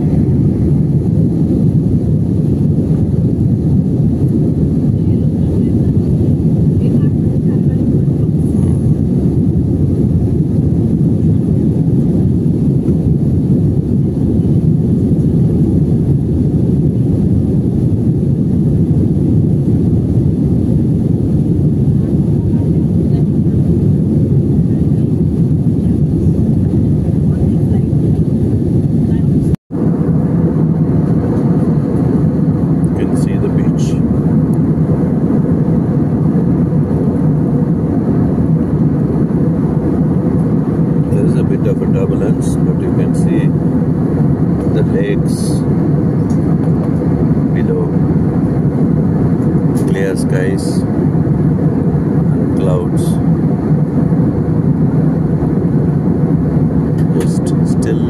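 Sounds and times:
jet airliner cabin noise: 0.0 - 58.0.

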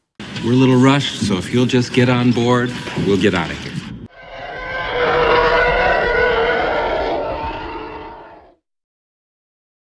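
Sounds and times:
spaceship engine roar: 4.1 - 8.6.

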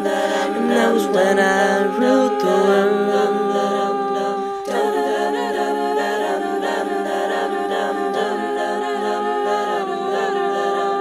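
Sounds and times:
boy singing layered harmony: 0.0 - 11.0.

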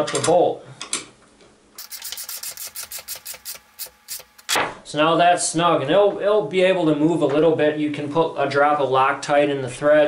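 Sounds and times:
ratchet wrench clicking: 1.8 - 4.6.

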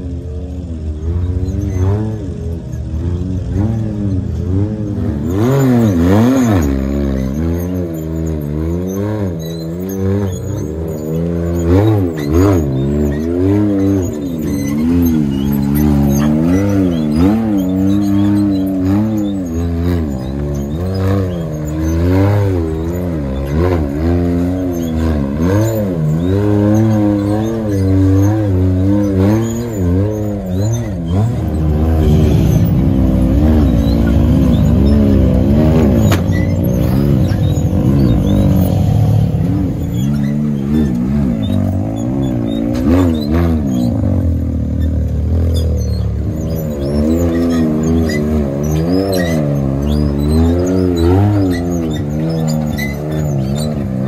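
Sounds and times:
engine revving up and down: 0.0 - 54.0.

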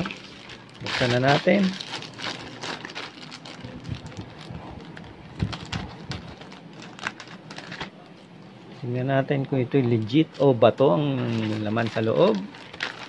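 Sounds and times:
plastic bag rustling and crinkling: 0.0 - 8.0, 10.3 - 13.0.

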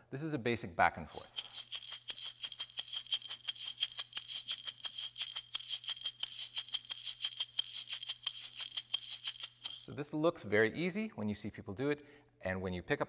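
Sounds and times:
shaker rattling: 1.1 - 10.0.

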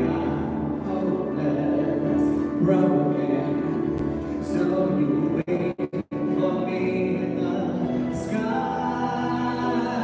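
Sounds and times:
musical accompaniment: 0.0 - 10.0
person singing live: 0.0 - 10.0.

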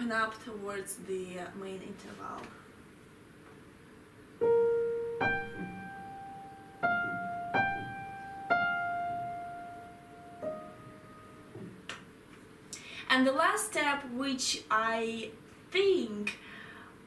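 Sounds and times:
upright piano melody: 4.4 - 11.9.

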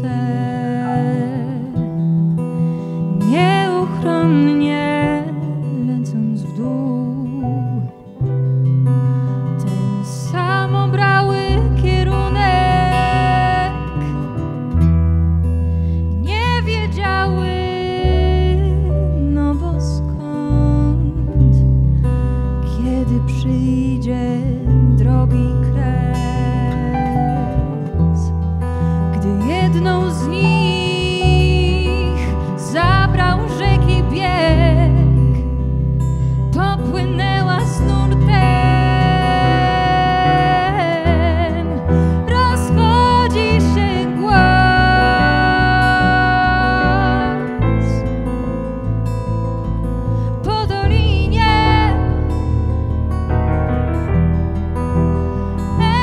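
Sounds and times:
woman singing: 0.0 - 8.3, 9.4 - 14.7, 16.1 - 21.8, 22.4 - 35.7, 36.4 - 48.1, 50.3 - 52.5, 55.6 - 56.0
acoustic guitar: 0.0 - 56.0
electric bass: 0.0 - 56.0
keyboard: 0.0 - 56.0.

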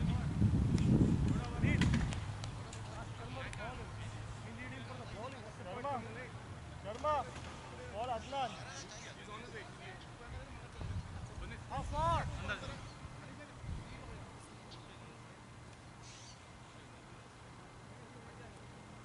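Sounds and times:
wind buffeting microphone: 0.0 - 3.9, 10.8 - 14.4.

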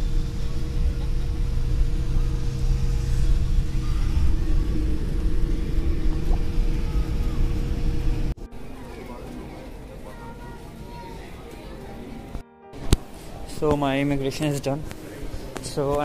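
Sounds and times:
airliner engines rumbling: 0.0 - 12.4
constant hum: 0.0 - 16.0.

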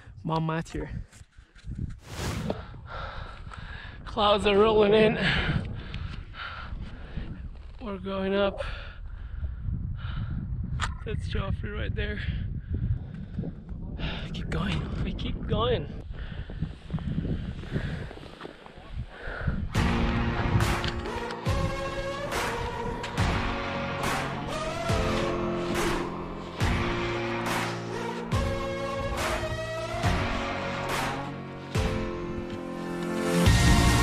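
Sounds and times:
wind rumbling on microphone: 0.8 - 21.9
person breathing hard: 2.4 - 4.0, 5.2 - 7.6, 8.6 - 10.6, 16.0 - 18.4, 19.1 - 19.8
music: 19.8 - 34.0.

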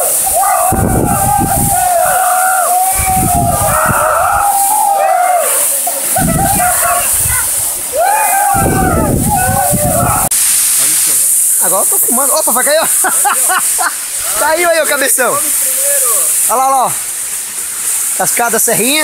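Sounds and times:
men yelling and whooping: 0.0 - 10.4, 11.8 - 16.9
waterfall pouring into pool: 0.0 - 19.0.

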